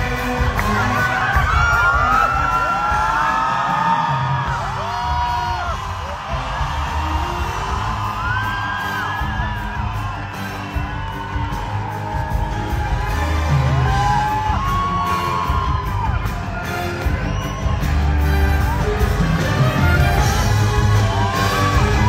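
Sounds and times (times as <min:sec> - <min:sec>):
audience cheering and whooping: 0:00.0 - 0:22.0
live band playing: 0:00.0 - 0:22.0.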